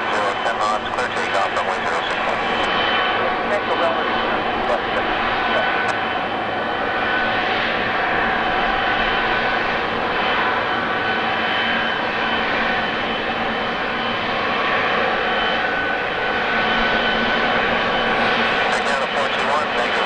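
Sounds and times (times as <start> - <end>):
high engine whine: 0.0 - 20.0
jet engine rumble: 0.0 - 20.0.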